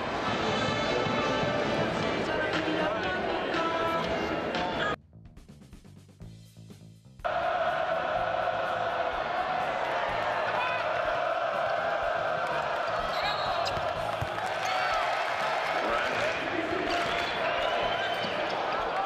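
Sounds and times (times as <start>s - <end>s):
crowd noise: 0.0s - 5.0s, 7.3s - 19.0s
sneaker squeaks: 13.0s - 14.0s.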